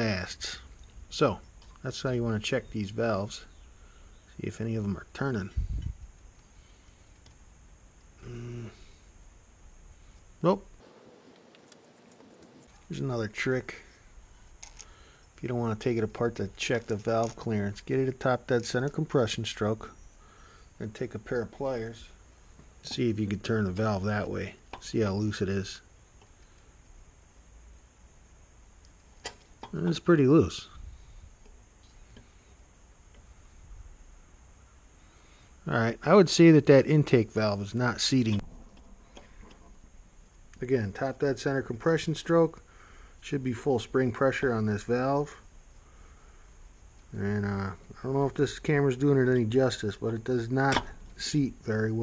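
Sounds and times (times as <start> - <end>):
low room hum: 0.0 - 52.0
person humming low: 8.2 - 9.0.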